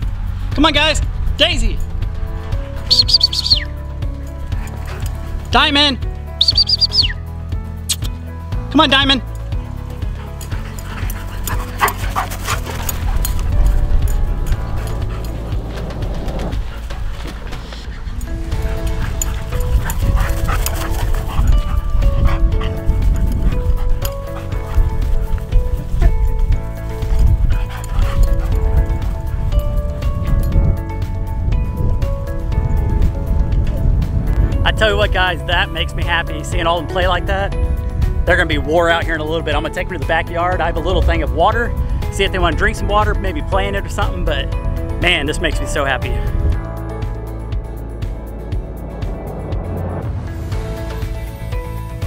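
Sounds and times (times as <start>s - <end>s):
background music: 0.0s - 52.0s
dogs barking: 2.9s - 5.6s, 6.4s - 7.2s, 10.0s - 30.5s.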